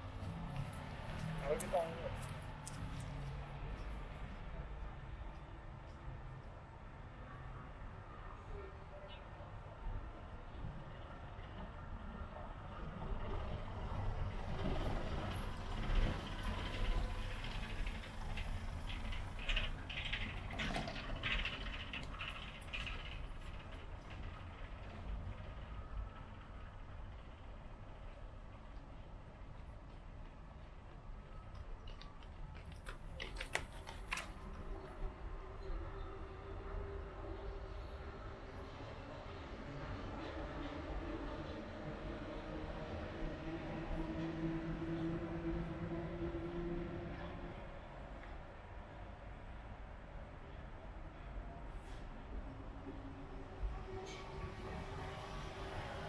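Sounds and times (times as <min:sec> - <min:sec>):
traffic rumble: 0:00.0 - 0:56.0.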